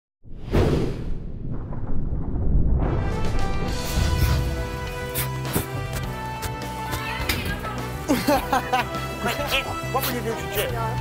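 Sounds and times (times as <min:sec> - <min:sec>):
deep rumble: 0:00.8 - 0:05.1.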